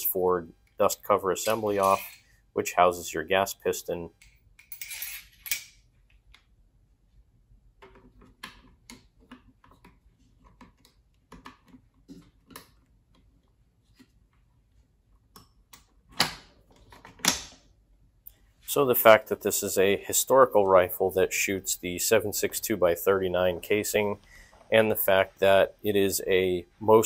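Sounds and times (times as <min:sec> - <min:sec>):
metal scrape: 0:01.4 - 0:02.4.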